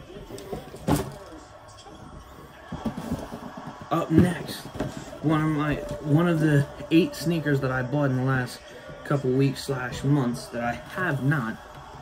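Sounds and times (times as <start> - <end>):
cardboard box rustling and bumps: 2.7 - 6.0.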